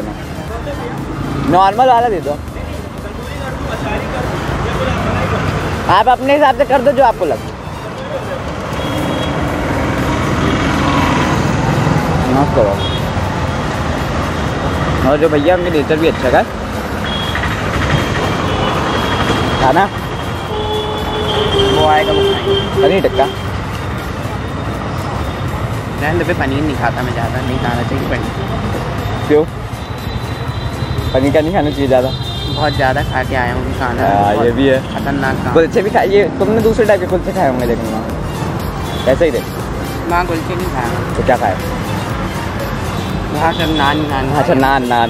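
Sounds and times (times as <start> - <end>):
road traffic passing: 0.0 - 45.0.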